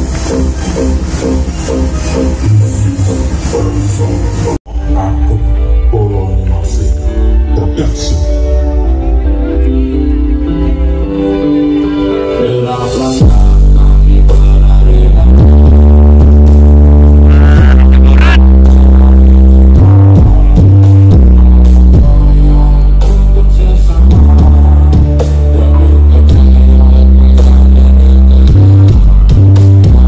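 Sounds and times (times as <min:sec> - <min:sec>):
bass-heavy electronic dance music: 0:00.0 - 0:30.0.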